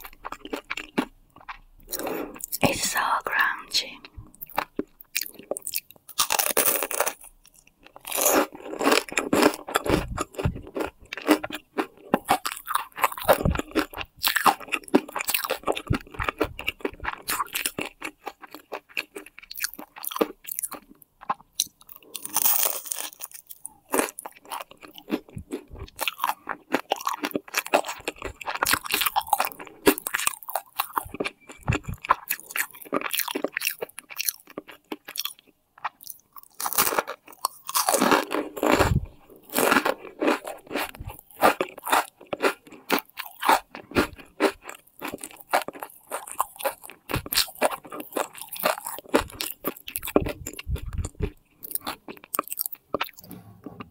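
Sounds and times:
crisp pastry crunching: 0.0 - 3.1, 4.4 - 53.2.

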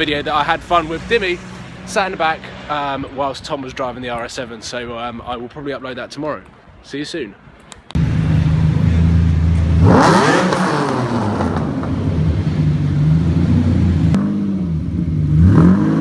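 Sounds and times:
car engine revving: 8.0 - 16.0.

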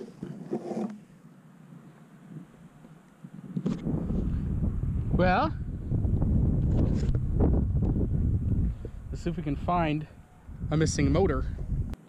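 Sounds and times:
wind buffeting microphone: 3.2 - 12.0.

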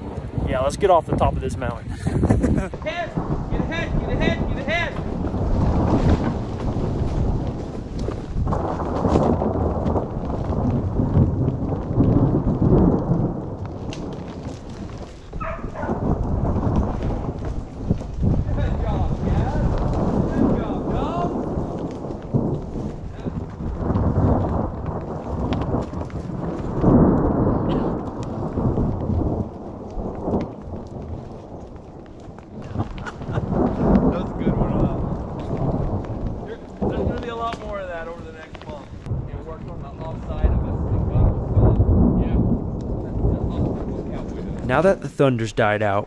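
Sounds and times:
thunder rolls: 0.0 - 45.0.

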